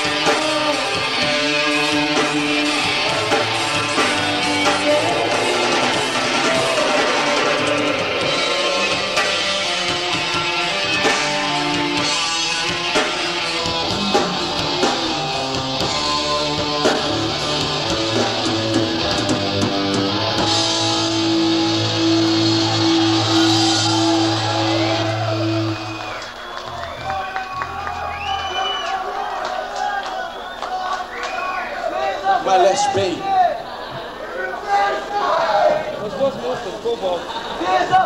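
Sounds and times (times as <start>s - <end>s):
live metal band playing: 0.0s - 28.8s.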